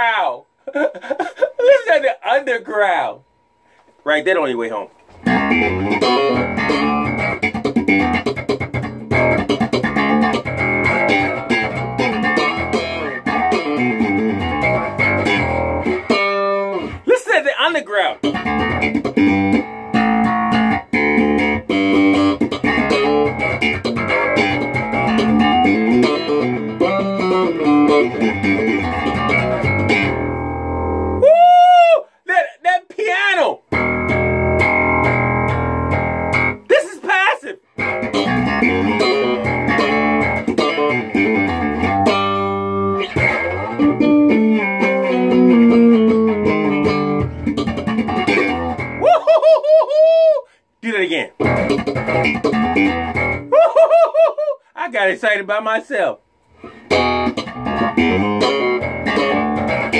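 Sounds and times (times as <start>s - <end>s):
electric bass playing: 5.1s - 17.1s, 18.2s - 31.2s, 33.6s - 36.7s, 37.6s - 49.1s, 51.3s - 53.5s, 56.6s - 59.9s.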